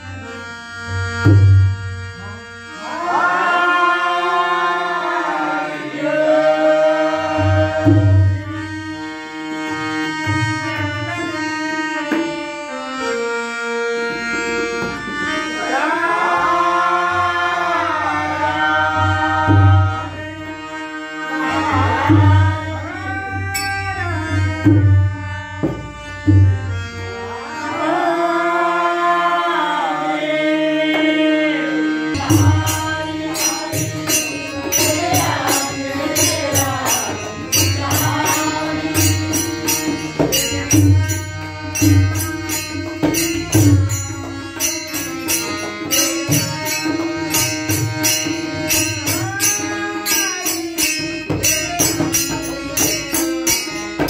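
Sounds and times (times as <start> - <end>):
harmonium playing held notes: 0.0 - 54.0
tabla drumming: 0.9 - 2.4, 6.4 - 12.6, 13.9 - 16.3, 18.2 - 20.5, 21.3 - 27.2, 32.1 - 54.0
person singing: 2.2 - 8.7, 15.2 - 24.6, 27.3 - 54.0.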